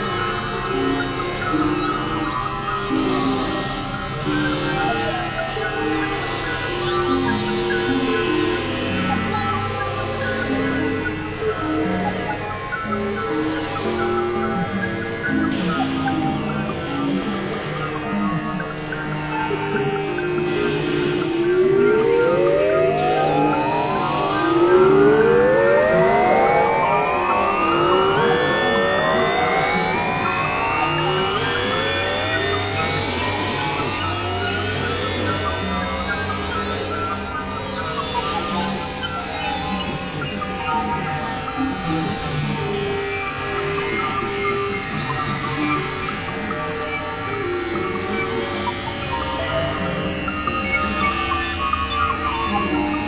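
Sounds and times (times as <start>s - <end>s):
low drone tones: 0.0s - 53.0s
synthesizer upward pitch sweeps: 2.9s - 53.0s.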